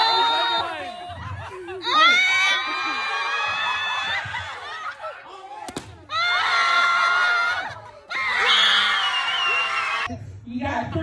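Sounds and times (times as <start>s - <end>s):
people laughing and shrieking: 0.0s - 10.1s.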